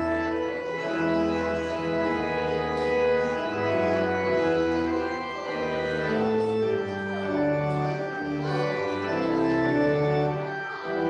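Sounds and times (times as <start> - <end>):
organ playing sustained chords: 0.0 - 11.0.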